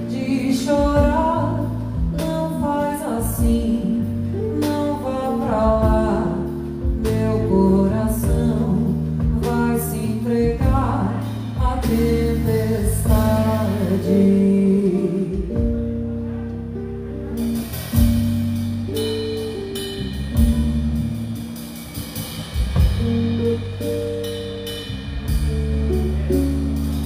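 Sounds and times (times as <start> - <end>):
drum kit snare and rimshots: 0.0 - 14.2, 17.2 - 27.0
woman singing: 0.0 - 16.0
guitar: 0.0 - 27.0.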